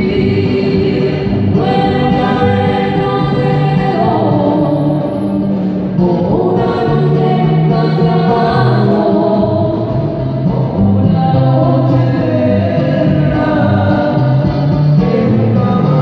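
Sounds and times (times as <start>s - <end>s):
acoustic guitar: 0.0s - 16.0s
person singing: 0.0s - 16.0s.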